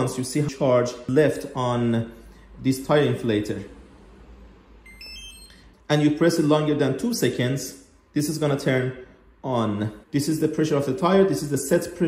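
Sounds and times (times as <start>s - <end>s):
electronic power-on beep: 4.8s - 5.7s.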